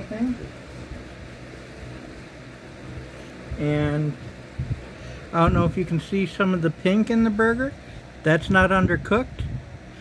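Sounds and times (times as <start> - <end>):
low room hum and hiss: 0.0 - 10.0.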